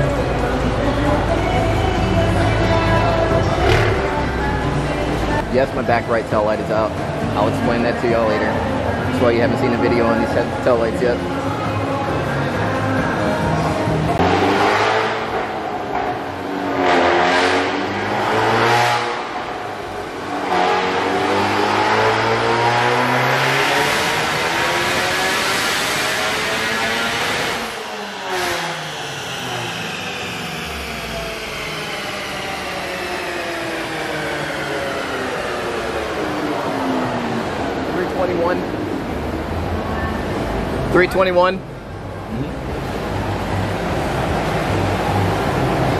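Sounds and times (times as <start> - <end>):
car engine revving: 0.0 - 11.2, 12.8 - 45.9.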